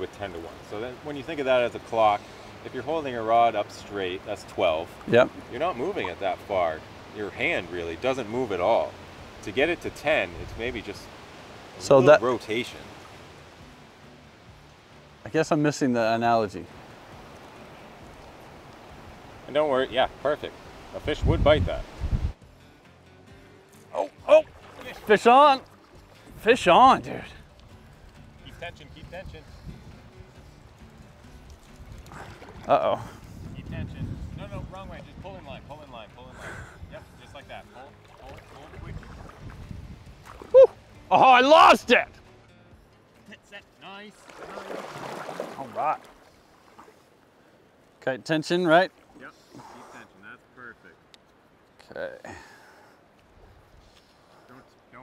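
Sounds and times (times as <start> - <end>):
flowing river water: 0.0 - 33.6, 34.3 - 55.0
man's excited shout: 40.5 - 42.1.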